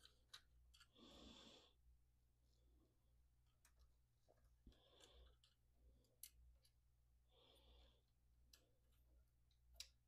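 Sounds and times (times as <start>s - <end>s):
soft breath: 0.8s - 1.9s, 4.4s - 6.4s, 7.1s - 8.6s.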